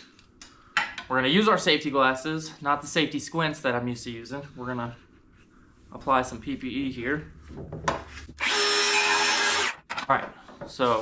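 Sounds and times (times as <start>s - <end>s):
circular saw cutting wood: 8.4s - 9.8s.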